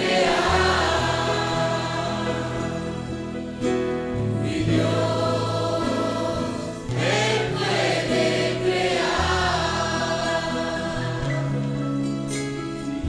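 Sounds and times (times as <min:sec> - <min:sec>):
children's choir singing a hymn: 0:00.0 - 0:11.8
instrumental accompaniment: 0:00.0 - 0:13.0.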